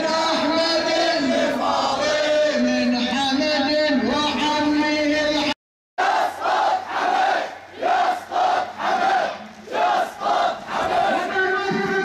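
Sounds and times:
crowd chanting slogans: 0.0s - 2.8s, 6.0s - 11.8s.

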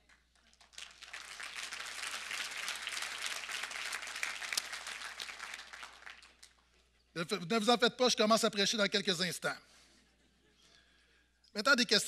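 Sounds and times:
congregation applauding: 0.0s - 6.6s.

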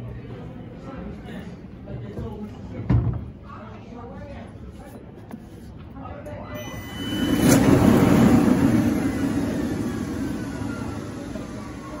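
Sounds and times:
floor scrubber motor whine: 6.6s - 12.0s.

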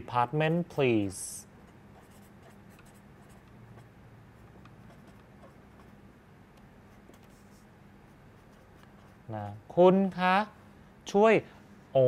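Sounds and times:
pen scratching on paper: 1.7s - 6.0s, 6.9s - 9.2s.

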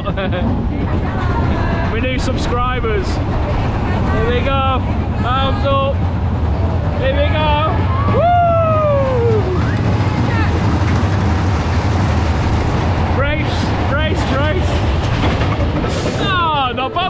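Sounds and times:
roller coaster rumble: 0.0s - 17.0s
riders whooping and shrieking: 7.3s - 10.6s.

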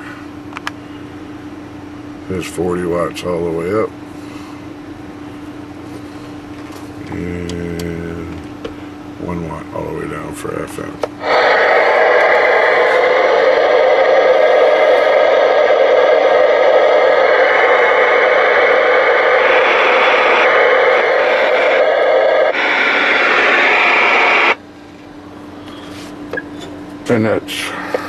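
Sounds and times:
faint steady hum: 0.0s - 28.0s
radio static hiss: 9.2s - 24.6s.

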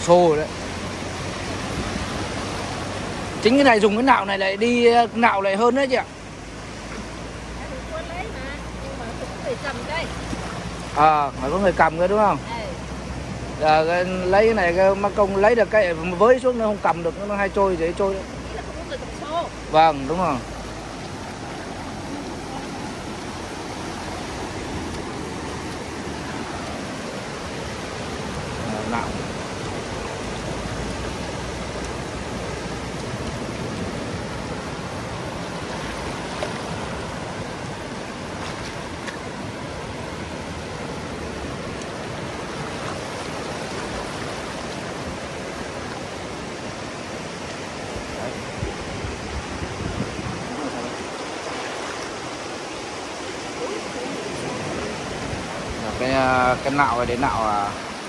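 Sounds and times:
surf washing over sand: 0.0s - 58.0s.

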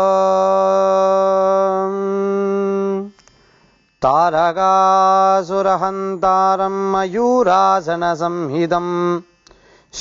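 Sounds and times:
man chanting a prayer: 0.0s - 3.2s, 4.0s - 9.3s.

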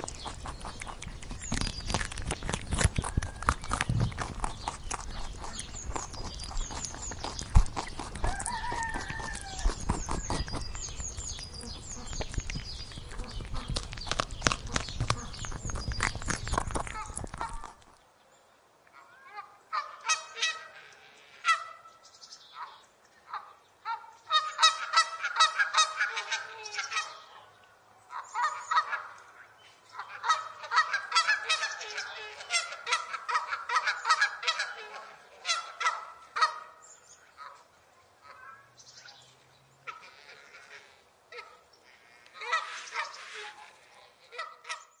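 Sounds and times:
rabbit chewing grass: 0.0s - 18.0s
geese honking: 30.0s - 36.8s, 39.9s - 44.9s.

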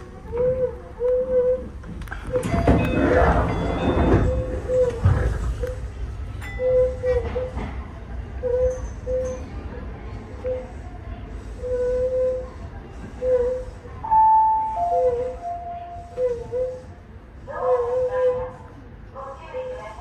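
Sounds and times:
electric train rumble: 0.0s - 20.0s
steady higher tone: 14.0s - 16.2s.

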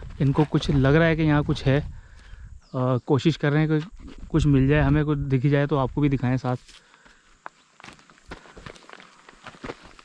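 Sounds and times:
footsteps on dry earth: 0.0s - 2.5s, 3.5s - 10.0s.

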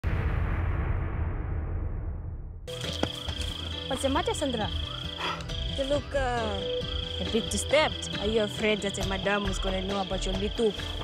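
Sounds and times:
low rumbling title sting: 0.0s - 2.7s.

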